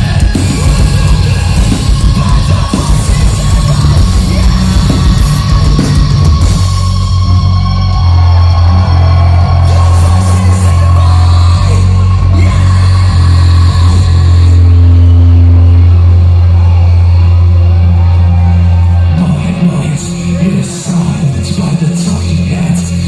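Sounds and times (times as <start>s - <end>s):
man singing: 0.0s - 8.6s, 9.4s - 14.9s, 19.0s - 23.0s
metal band playing loud: 0.0s - 23.0s.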